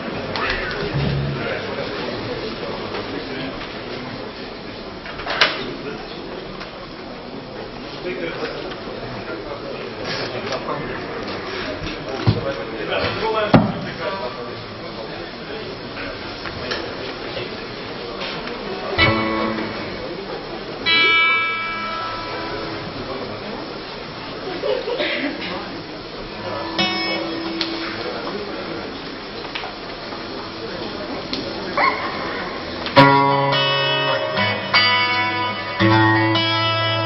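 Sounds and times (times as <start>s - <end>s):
murmur of voices: 0.0s - 37.0s
bright ringing guitar note: 0.9s - 2.2s, 19.0s - 23.3s, 26.4s - 28.6s
plucked guitar note ringing: 0.9s - 2.3s, 19.0s - 23.3s, 26.4s - 28.6s, 31.8s - 37.0s.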